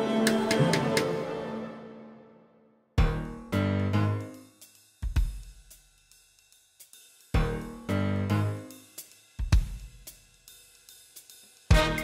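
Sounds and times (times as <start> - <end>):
soft hi-hat ticks: 4.3 - 7.7, 8.7 - 12.0
bass drum and cymbal hit: 4.5 - 12.0.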